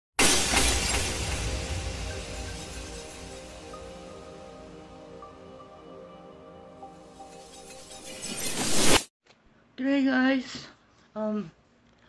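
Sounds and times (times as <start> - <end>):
glass shattering with deep boom: 0.2 - 4.3
music: 0.9 - 9.0.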